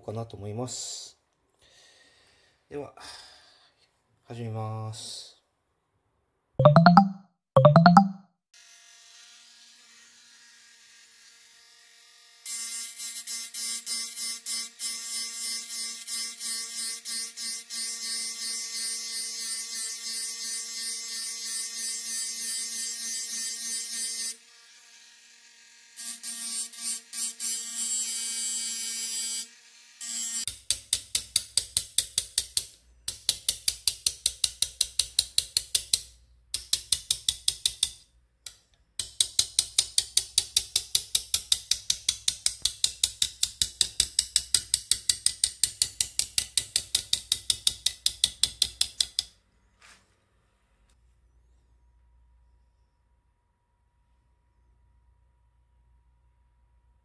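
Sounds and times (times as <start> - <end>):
hammer tapping steel blade: 30.5 - 49.4.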